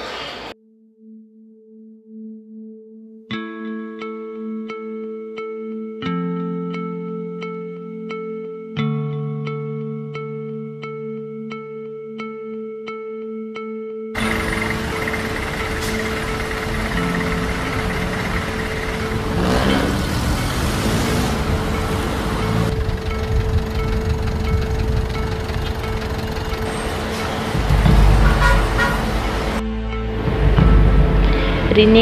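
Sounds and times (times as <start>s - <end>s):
held music tone: 14.2s - 32.0s
low engine rumble: 14.2s - 32.0s
road traffic: 14.2s - 32.0s.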